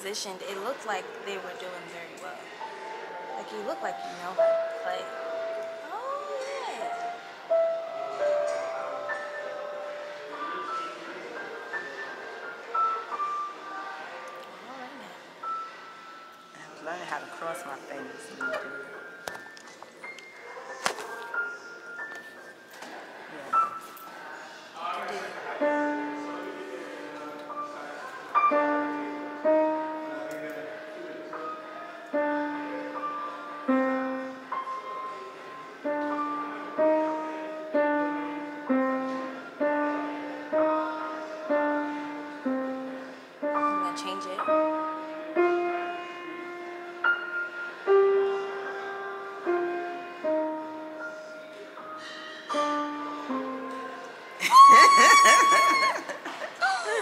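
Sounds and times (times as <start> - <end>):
slow piano melody: 0.0 - 57.0.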